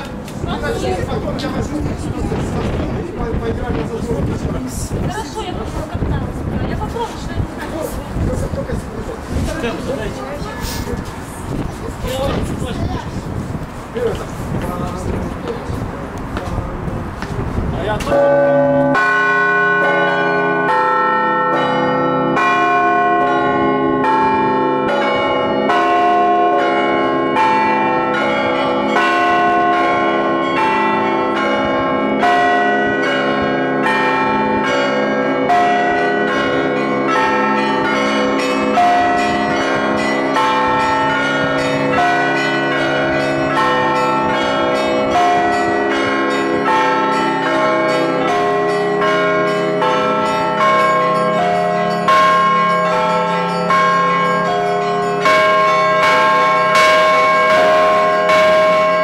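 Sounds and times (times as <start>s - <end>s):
small church bells ringing: 0.0s - 10.7s, 17.9s - 59.0s
hum of large bells: 17.8s - 59.0s
heavy bell stroke: 18.1s - 59.0s.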